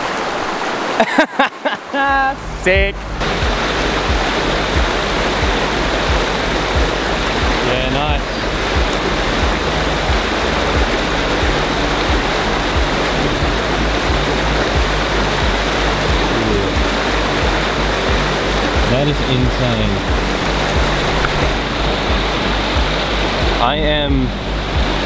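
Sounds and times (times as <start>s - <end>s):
river rapids rushing: 0.0s - 25.0s
background music with low beat: 2.4s - 25.0s.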